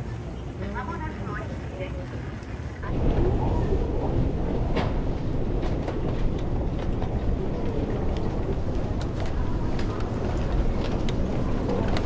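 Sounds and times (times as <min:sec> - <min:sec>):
low rumble of walking: 0:00.7 - 0:12.0.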